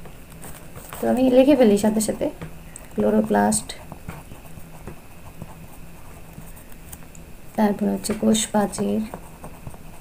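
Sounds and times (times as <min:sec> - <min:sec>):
pencil writing on paper: 0:08.7 - 0:10.0.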